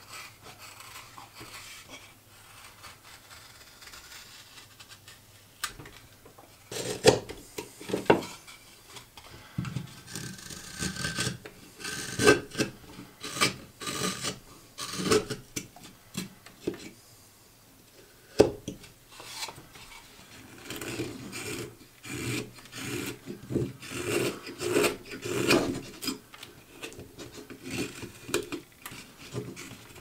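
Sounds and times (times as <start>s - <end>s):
knife carving wood shavings: 0.0s - 5.1s, 6.7s - 8.4s, 10.0s - 16.8s, 19.2s - 30.0s.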